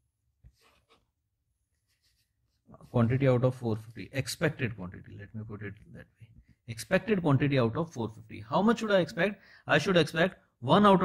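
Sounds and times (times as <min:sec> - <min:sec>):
faint scratching: 0:00.4 - 0:03.2
man speaking: 0:02.7 - 0:11.0.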